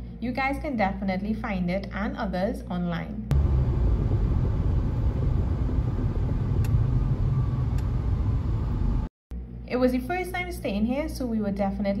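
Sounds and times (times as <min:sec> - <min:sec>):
car road and engine rumble: 0:03.3 - 0:09.1.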